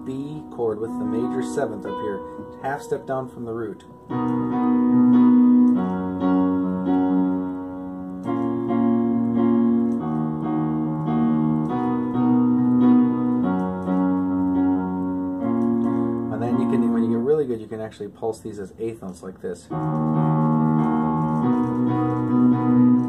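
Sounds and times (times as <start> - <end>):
man speaking: 0.0 - 3.9, 16.3 - 19.7
digital piano playing chords: 0.0 - 18.9, 19.7 - 23.0.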